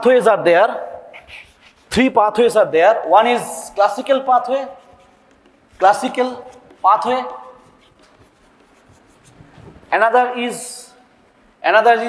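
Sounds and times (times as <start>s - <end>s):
chalk scratching on chalkboard: 1.1s - 2.2s, 3.2s - 10.1s.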